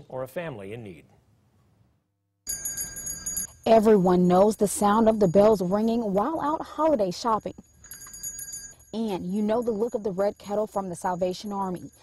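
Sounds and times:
metal handbell ringing: 0:02.5 - 0:03.7, 0:07.3 - 0:12.0.

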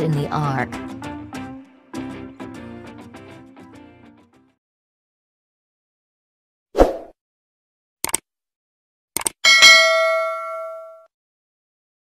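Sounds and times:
notification bell ding: 0:09.5 - 0:11.1.

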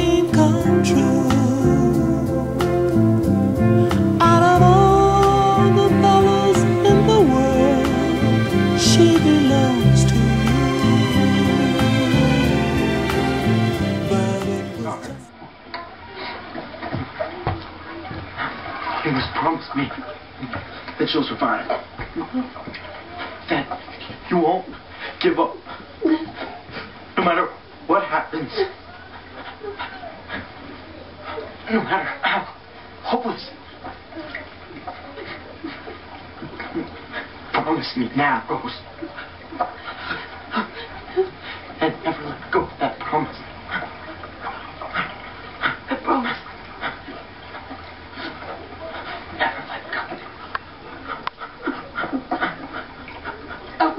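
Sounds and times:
person sobbing: 0:03.8 - 0:11.9.

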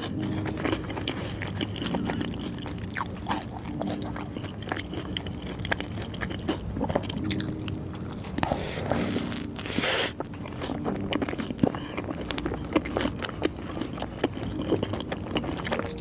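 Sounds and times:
chewing and biting a burger: 0:00.0 - 0:16.0.

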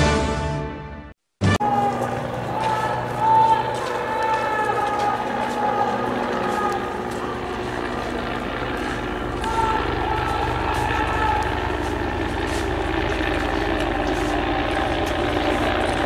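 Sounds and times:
low rumble with fast flutter: 0:05.2 - 0:16.0.

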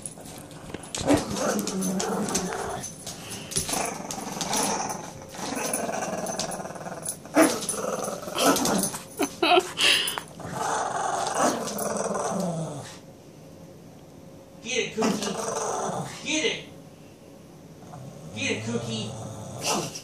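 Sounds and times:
dogs growling: 0:00.1 - 0:13.1, 0:15.0 - 0:16.2, 0:17.8 - 0:20.0.

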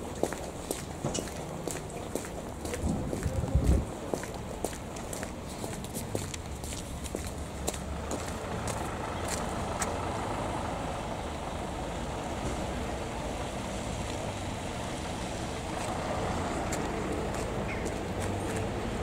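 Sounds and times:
traffic on wet roads: 0:00.0 - 0:19.0
light footstep clicks: 0:00.1 - 0:10.0.

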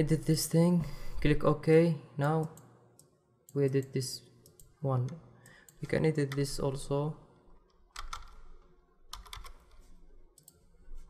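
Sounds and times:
computer keyboard keystrokes: 0:07.9 - 0:10.6.

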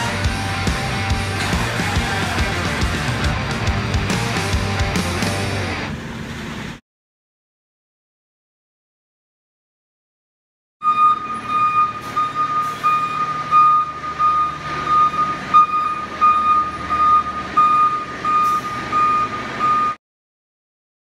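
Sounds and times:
diesel engine running: 0:00.0 - 0:06.8, 0:10.9 - 0:20.0
reverse alarm beeping: 0:10.8 - 0:20.0.

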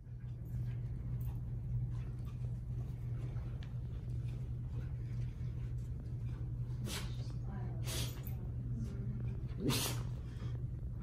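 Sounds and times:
dog harness ticks and rustles: 0:00.0 - 0:07.4
steady low hum: 0:00.0 - 0:11.0.

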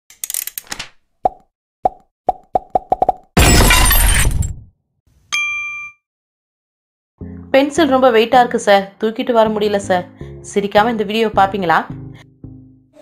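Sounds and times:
bell-like ding: 0:05.3 - 0:06.0.

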